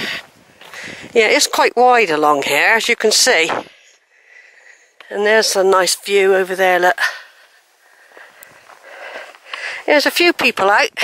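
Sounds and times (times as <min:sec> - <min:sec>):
footsteps on dirt path: 0:00.0 - 0:11.0
soft steady hiss: 0:00.0 - 0:11.0.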